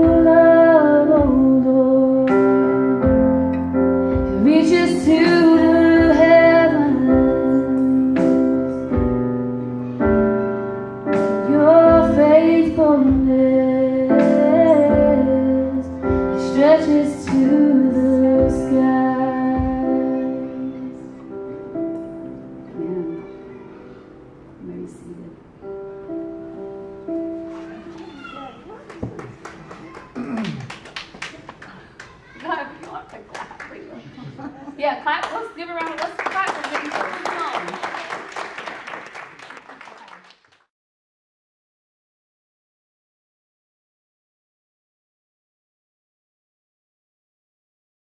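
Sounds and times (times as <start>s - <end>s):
woman singing: 0.0s - 3.1s, 4.2s - 8.8s, 11.4s - 21.2s
keyboard chords: 0.0s - 30.6s.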